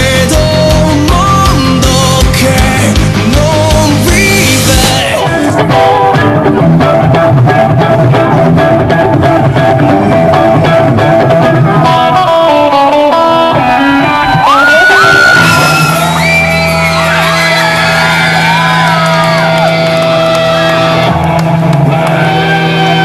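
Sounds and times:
lead guitar bending notes: 0.0s - 23.0s
pop-rock music with electric guitars: 0.0s - 23.0s.

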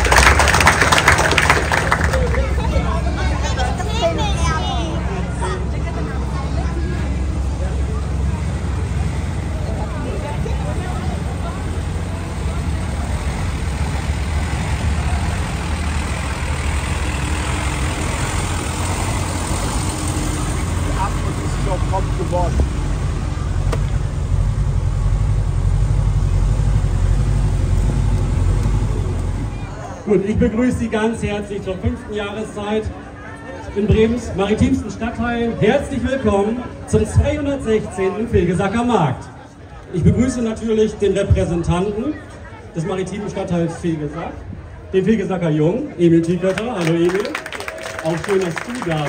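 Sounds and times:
bus engine rumbling: 0.0s - 49.0s
people talking while walking: 1.8s - 49.0s.

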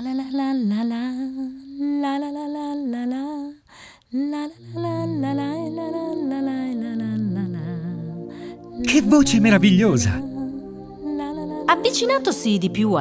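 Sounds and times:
woman singing slow melody: 0.0s - 8.9s, 10.2s - 13.0s
low sustained accompanying notes: 4.7s - 13.0s.

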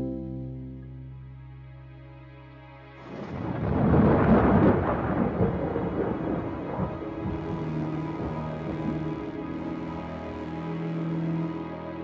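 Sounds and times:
soundtrack music: 0.0s - 12.0s
rolling noisy rumble: 3.2s - 10.6s.

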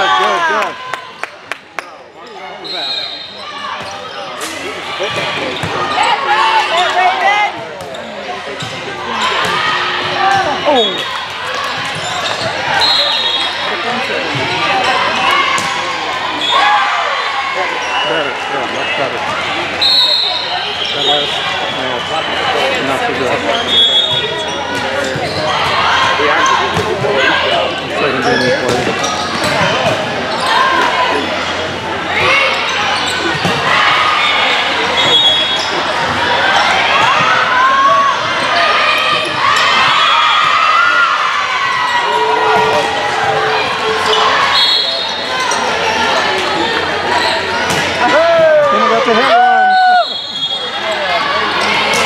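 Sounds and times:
shoes squeaking on court floor: 2.2s - 9.6s, 10.3s - 15.7s, 23.4s - 25.8s, 28.1s - 30.8s, 41.7s - 47.9s
people calling out: 32.2s - 52.0s.

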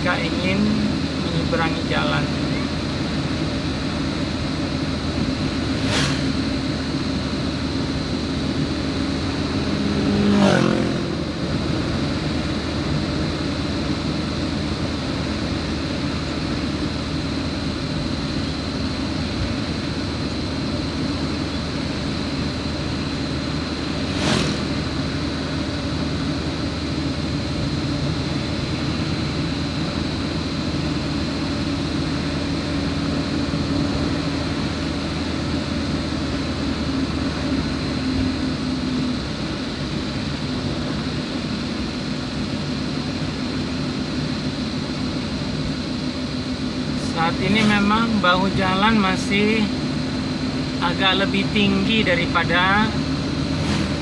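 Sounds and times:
vehicle engine and tyre noise: 0.0s - 54.0s.

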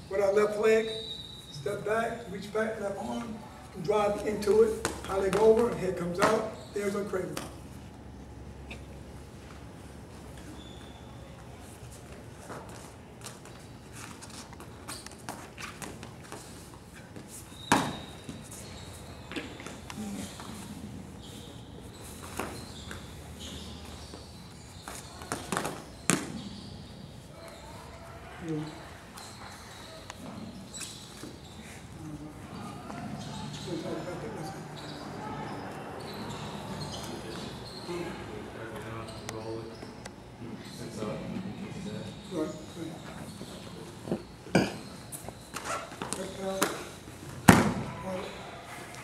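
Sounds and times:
thin high squeak: 10.4s - 11.2s
indistinct talk from people: 24.8s - 49.0s.

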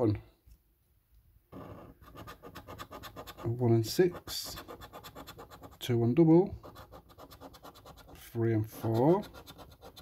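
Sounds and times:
scratching a paper scratchcard: 1.5s - 5.9s, 6.6s - 10.0s.

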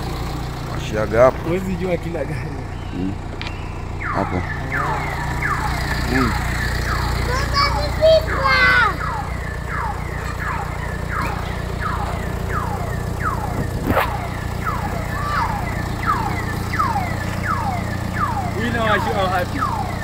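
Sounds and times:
car engine idling: 0.0s - 20.0s
high chirp falling in pitch: 2.6s - 20.0s.

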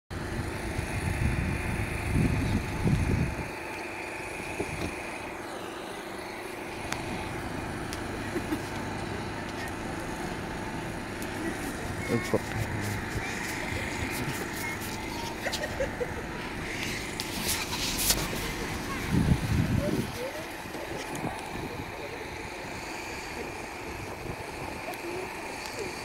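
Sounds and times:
car engines humming: 0.1s - 26.0s
wind buffeting microphone: 0.2s - 3.7s, 16.3s - 25.4s.

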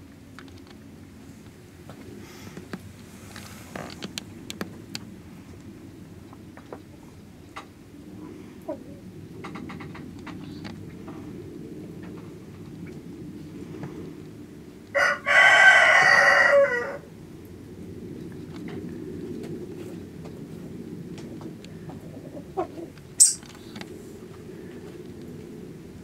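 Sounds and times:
rooster crowing: 14.9s - 17.1s
sharp high-pitched click: 23.2s - 23.5s.

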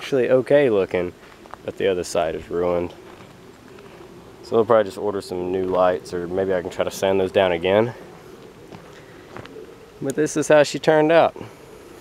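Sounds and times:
faint bird call: 7.8s - 10.1s.

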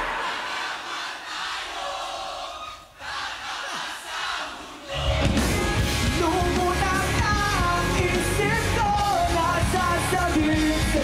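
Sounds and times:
crowd cheering and shouting: 0.0s - 11.0s
band playing: 4.9s - 11.0s.

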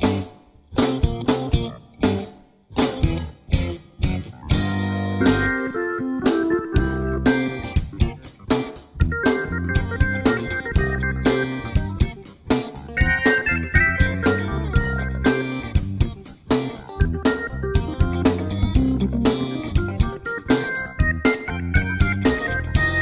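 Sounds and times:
steady drum beat: 0.0s - 5.7s, 6.3s - 23.0s
sustained melodic notes: 13.0s - 15.8s.

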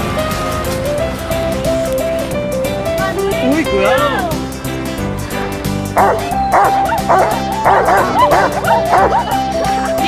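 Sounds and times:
background music: 0.0s - 10.0s
dog barking and yipping: 6.0s - 10.0s.

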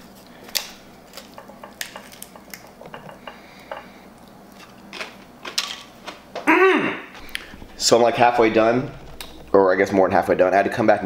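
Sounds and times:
tortilla chips crunching: 4.4s - 6.3s.

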